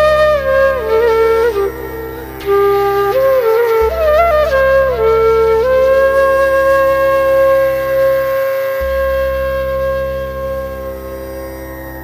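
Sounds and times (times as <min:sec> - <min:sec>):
flute holding long note: 0:00.0 - 0:11.7.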